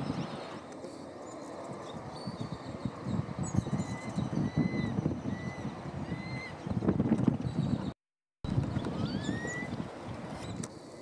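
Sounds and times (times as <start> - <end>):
bird whistling rising note: 8.9 - 9.7.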